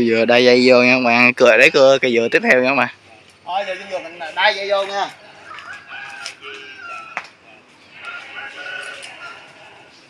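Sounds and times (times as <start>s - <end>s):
rooster crowing: 4.8s - 10.0s.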